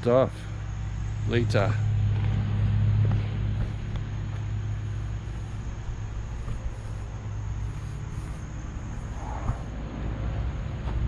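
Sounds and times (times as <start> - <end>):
low engine-like hum: 0.0 - 11.0.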